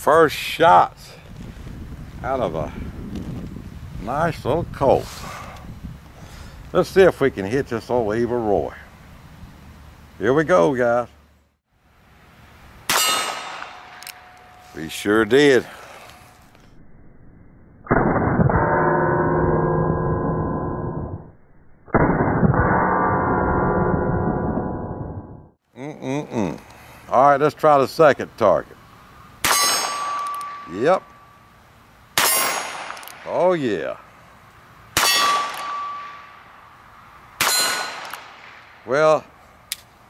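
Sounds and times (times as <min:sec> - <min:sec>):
steel targets ringing: 0:12.9 - 0:16.4, 0:29.4 - 0:31.6, 0:35.0 - 0:36.7, 0:37.4 - 0:38.4.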